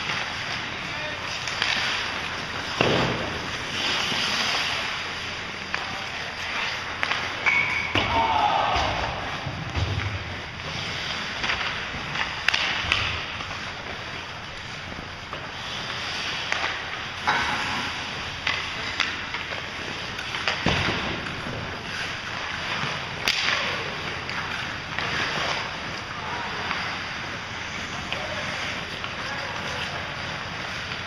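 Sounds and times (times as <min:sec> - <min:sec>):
skate blades scraping ice: 0:00.0 - 0:07.8, 0:08.4 - 0:31.0
hockey sticks and puck cracking: 0:00.0 - 0:31.0.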